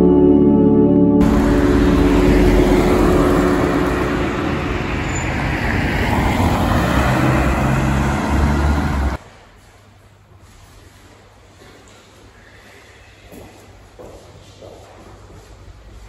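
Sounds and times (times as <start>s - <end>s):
road traffic passing: 1.2s - 9.6s.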